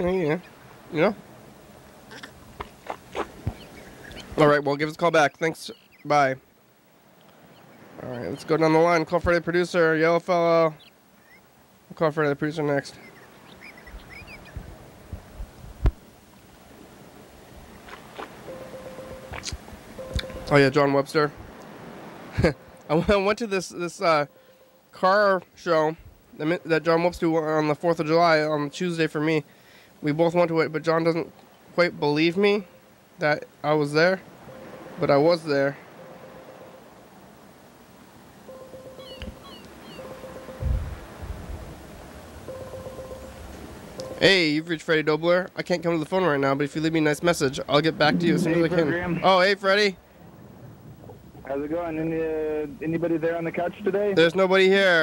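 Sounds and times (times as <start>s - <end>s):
steady beep tone: 18.4s - 19.4s, 20.0s - 20.8s, 34.4s - 35.2s, 36.0s - 36.8s, 38.4s - 40.9s, 42.4s - 44.5s
faint high chirps: 18.4s - 20.8s, 38.4s - 40.8s, 42.5s - 44.5s.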